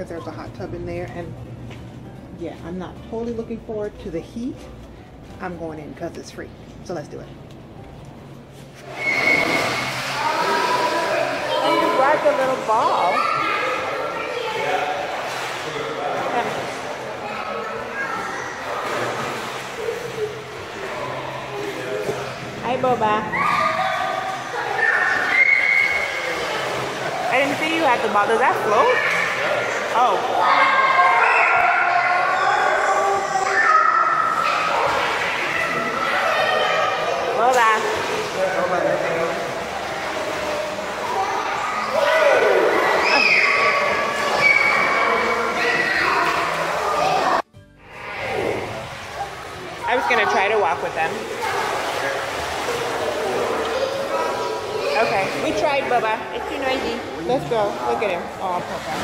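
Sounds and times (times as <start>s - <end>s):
children's voices and shouts echoing: 9.0s - 15.6s, 17.0s - 21.9s, 23.2s - 27.4s, 28.4s - 38.4s, 39.7s - 58.2s.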